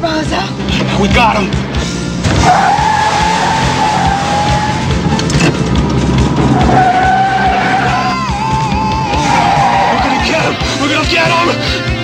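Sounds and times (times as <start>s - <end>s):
film soundtrack music: 0.0s - 12.0s
car tyres squealing: 2.3s - 10.6s
car engine running: 3.2s - 8.8s.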